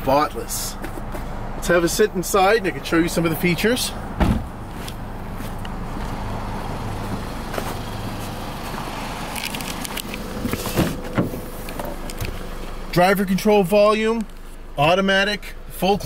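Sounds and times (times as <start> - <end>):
car door clunks: 4.2 - 4.6, 10.4 - 12.4.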